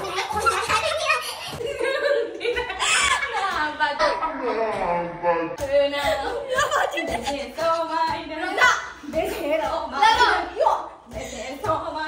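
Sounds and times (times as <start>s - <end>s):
women laughing: 0.0s - 4.8s, 6.1s - 7.6s.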